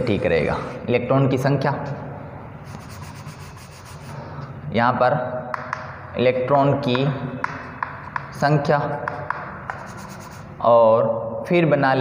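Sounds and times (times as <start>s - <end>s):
chalk scratching on chalkboard: 2.6s - 4.2s, 9.2s - 10.6s.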